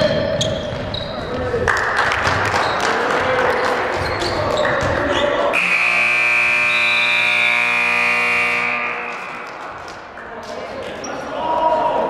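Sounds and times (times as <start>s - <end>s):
gym crowd noise: 0.0s - 12.0s
scoreboard buzzer long tone: 5.6s - 9.6s.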